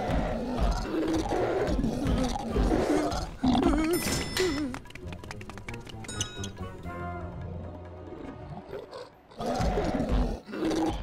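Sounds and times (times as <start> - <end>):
monster growling and grunting: 0.0 - 4.0, 9.3 - 11.0.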